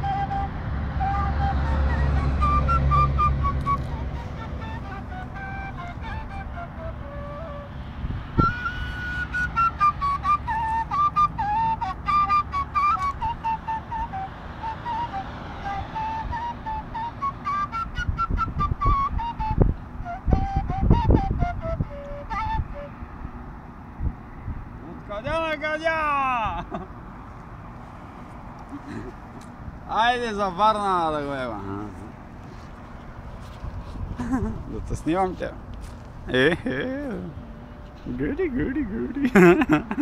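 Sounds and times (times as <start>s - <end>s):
solo flute melody: 0.0s - 23.4s.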